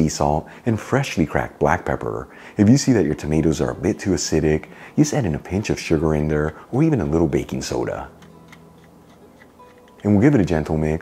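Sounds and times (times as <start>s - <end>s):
pepper mill cracking peppercorns: 7.8s - 10.7s.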